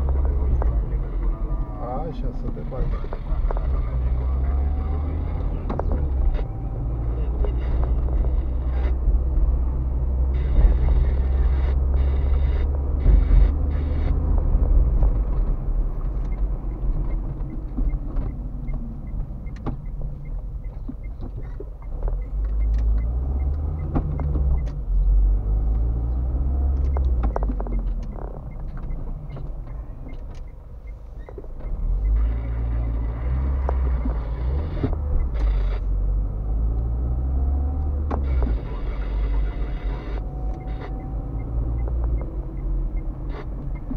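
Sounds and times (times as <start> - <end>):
car engine and road rumble: 0.0 - 43.9
turn signal ticking: 0.0 - 43.9.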